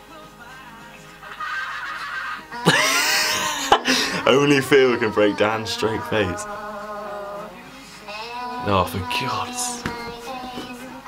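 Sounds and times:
young man laughing heartily: 1.2s - 4.4s.

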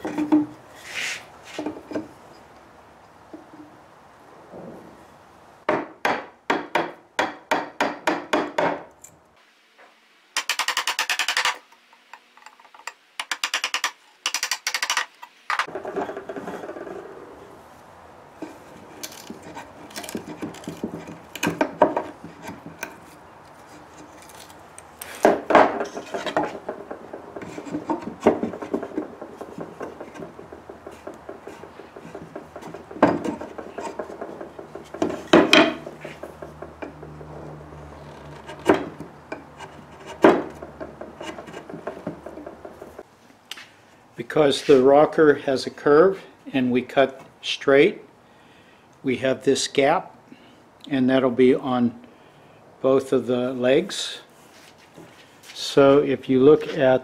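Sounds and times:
wood chisel cutting strokes: 0.0s - 2.0s, 10.4s - 17.0s, 18.4s - 43.0s
chisel scraping wood: 0.0s - 2.1s, 18.3s - 43.0s
wood knocking against wood: 5.7s - 8.9s, 19.3s - 23.0s, 25.2s - 43.0s
chisel rasping shaving wood: 18.7s - 24.5s, 25.9s - 37.4s, 38.1s - 43.0s.

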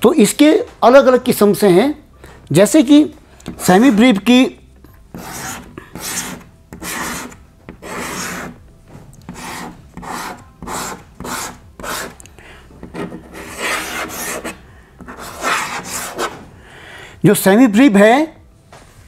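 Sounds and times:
chalk scraping on chalkboard: 3.5s - 4.3s, 5.1s - 8.6s, 9.3s - 12.2s, 12.8s - 16.4s.

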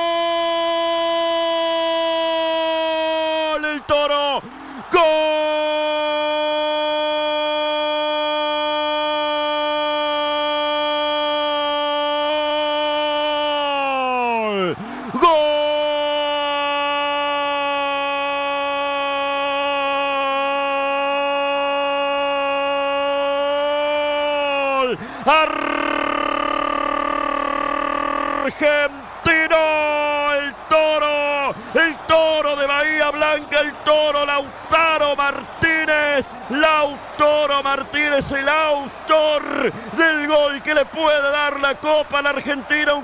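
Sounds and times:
commentator's drawn-out goal cry: 0.0s - 43.0s.

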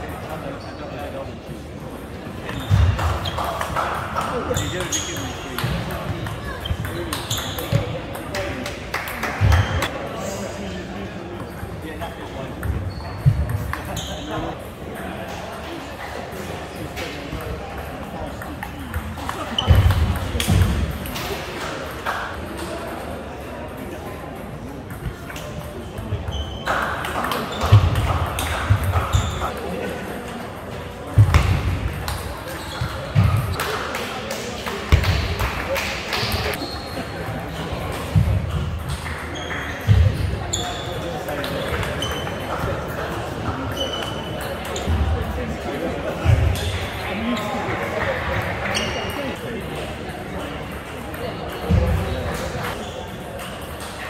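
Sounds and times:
murmur of voices: 0.0s - 54.0s
shoes squeaking on sports floor: 2.4s - 5.8s, 6.4s - 7.9s, 12.6s - 14.6s, 26.2s - 29.5s, 32.1s - 33.8s, 36.2s - 42.7s, 43.6s - 45.0s, 48.6s - 49.4s.

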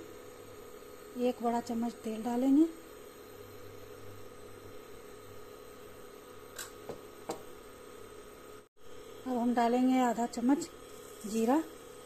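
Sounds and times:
induction cooktop hum: 0.0s - 12.0s.

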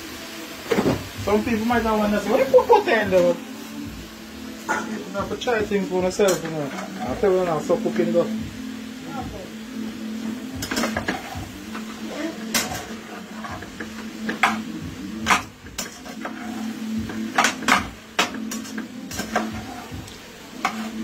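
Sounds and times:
metal spoon scraping a saucepan: 6.2s - 7.2s, 15.3s - 20.0s.

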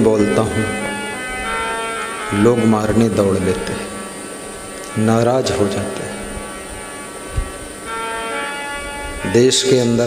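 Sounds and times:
electrical hum from sound system: 0.0s - 10.0s
second steady hum tone: 0.0s - 10.0s.

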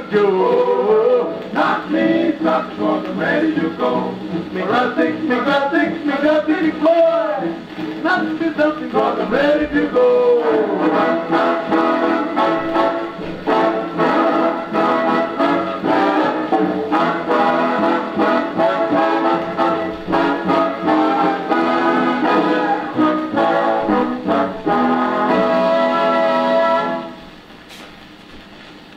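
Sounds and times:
swing brass section playing: 0.0s - 27.3s
record surface noise: 0.0s - 28.9s.

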